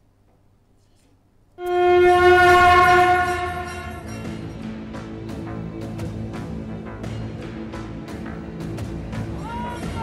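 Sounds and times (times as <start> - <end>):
sustained horn-like sting tone: 1.6 - 4.4.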